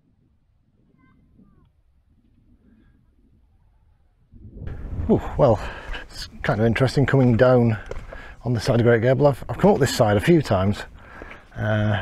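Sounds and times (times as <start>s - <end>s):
faint wind rumble on microphone: 0.0s - 7.1s.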